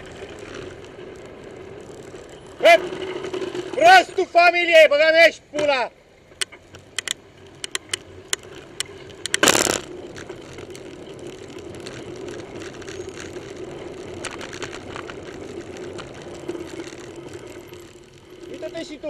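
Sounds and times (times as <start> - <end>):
road and traffic noise: 0.0 - 19.0
sharp clicks: 6.4 - 10.2.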